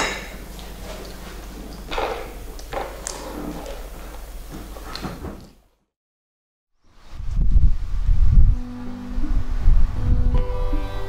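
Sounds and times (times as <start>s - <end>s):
wind buffeting microphone: 7.0s - 10.9s
soft held music notes: 8.2s - 11.0s.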